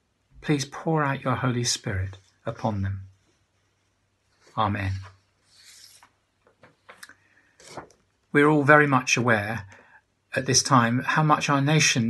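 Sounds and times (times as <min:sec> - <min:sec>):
soft rustle: 0:02.0 - 0:08.3.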